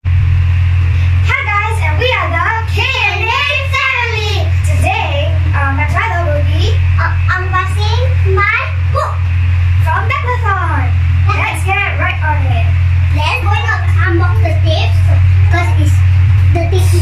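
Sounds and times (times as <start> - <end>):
steady low hum: 0.0 - 17.0
children talking: 1.2 - 17.0.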